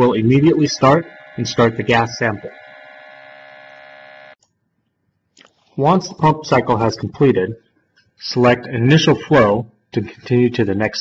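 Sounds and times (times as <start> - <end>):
sample pump buzzing hum: 0.0 - 4.4.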